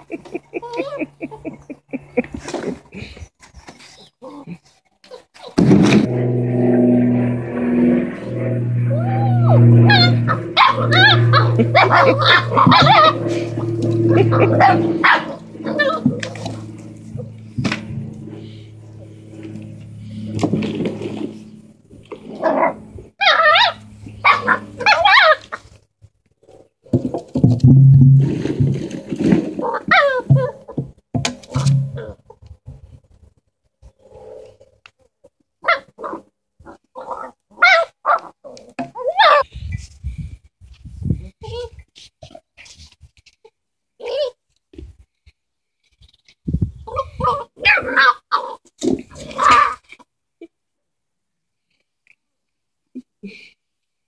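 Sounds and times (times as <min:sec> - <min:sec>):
puppies yelping and squealing: 0:09.0 - 0:16.5, 0:23.2 - 0:25.5
puppy growling: 0:09.0 - 0:17.4, 0:22.2 - 0:25.5.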